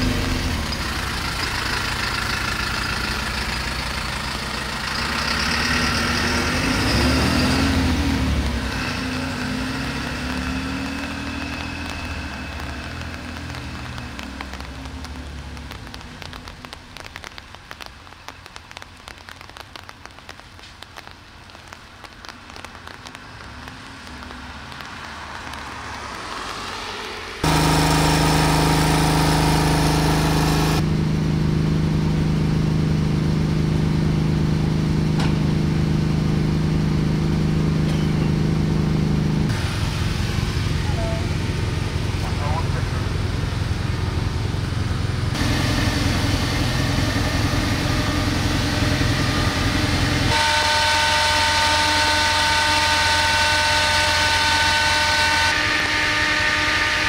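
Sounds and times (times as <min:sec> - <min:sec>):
fire engine motor running: 0:00.0 - 0:19.8, 0:27.4 - 0:57.0
voices: 0:40.8 - 0:43.3.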